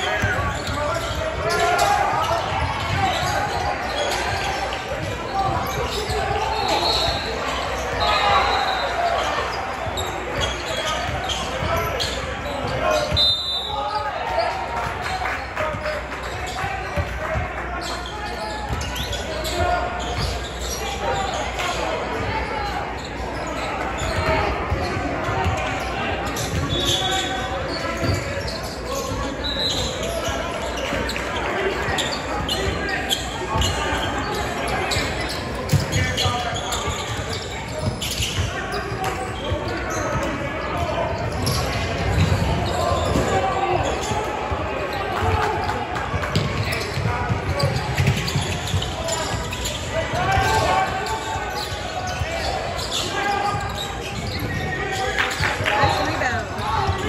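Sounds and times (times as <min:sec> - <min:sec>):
indistinct chatter: 0:00.0 - 0:57.0
basketball bouncing on court: 0:34.9 - 0:44.6, 0:46.1 - 0:50.7.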